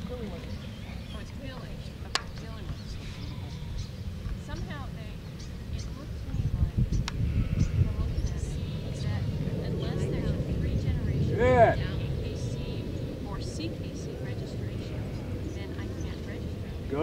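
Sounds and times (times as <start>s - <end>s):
low rumble: 0.0s - 17.0s
person shouting a command: 11.3s - 11.8s.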